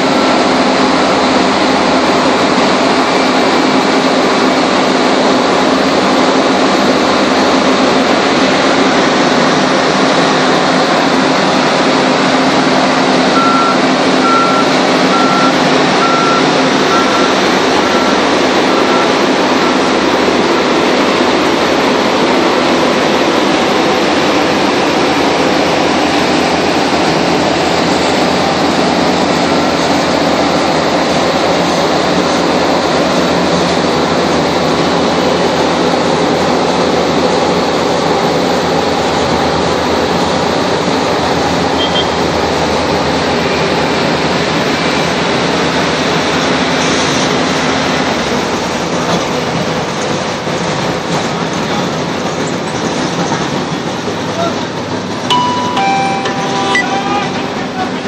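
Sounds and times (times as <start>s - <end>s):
road paving machinery droning: 0.0s - 58.0s.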